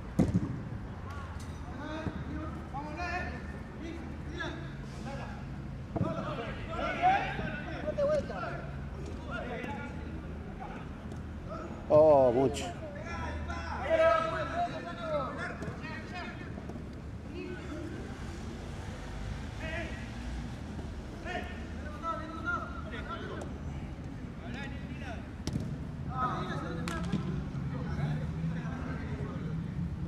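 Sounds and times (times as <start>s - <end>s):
players calling and shouting: 0.1s - 29.5s.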